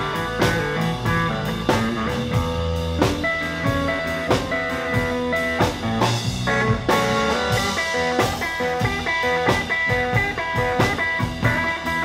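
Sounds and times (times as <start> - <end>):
drums keeping a beat: 0.0 - 12.0
electric bass: 0.0 - 12.0
electric guitar lead lines: 0.0 - 12.0.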